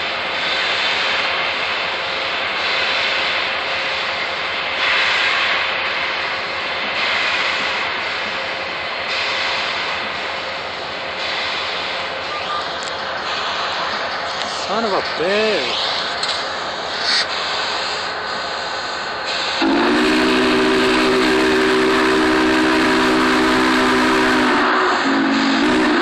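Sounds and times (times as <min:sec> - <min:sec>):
steam locomotive hissing steam: 0:00.0 - 0:26.0.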